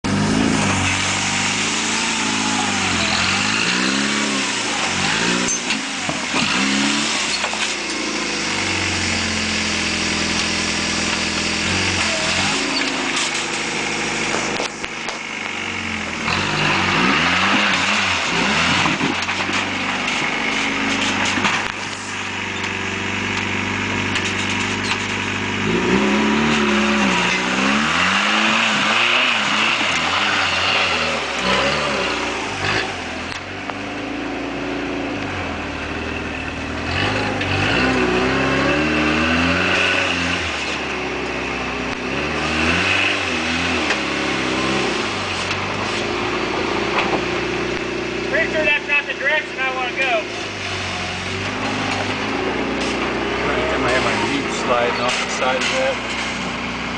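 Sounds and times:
buggy engine revving: 0.0s - 56.9s.

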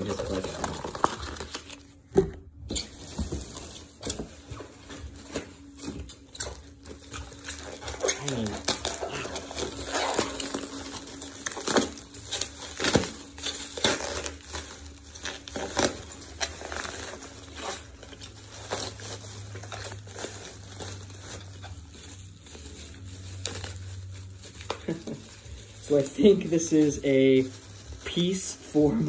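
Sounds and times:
bubble wrap crinkling: 0.0s - 29.0s.

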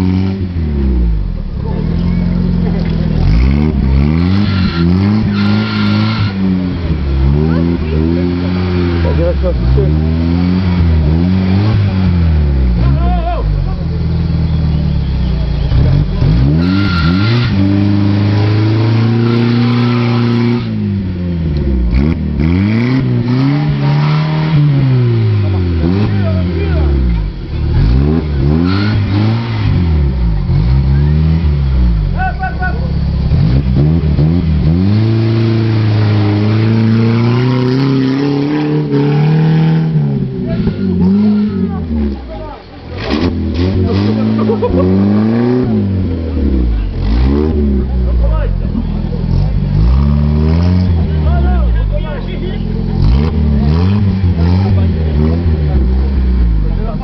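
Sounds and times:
engine revving hard: 0.0s - 57.0s.

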